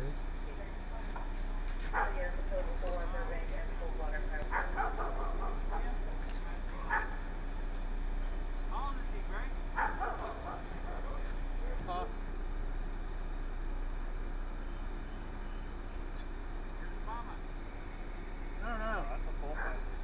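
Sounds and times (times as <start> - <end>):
steady low hum: 0.0 - 20.0
dog barking: 1.9 - 2.3, 4.4 - 6.0, 6.8 - 7.3, 9.8 - 11.0.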